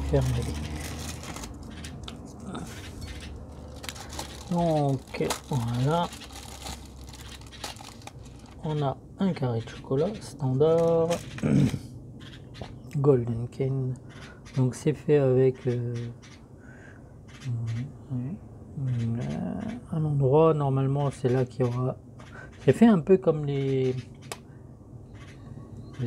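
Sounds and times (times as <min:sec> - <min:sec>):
foil wrapper crinkling and tearing: 0:00.0 - 0:01.7, 0:03.5 - 0:08.6.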